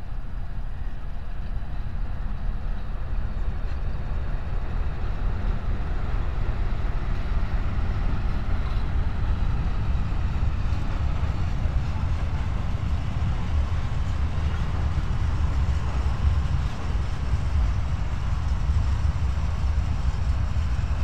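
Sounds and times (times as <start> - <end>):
diesel locomotive engine rumble: 0.0 - 21.0
wagons rolling along rails: 2.5 - 21.0.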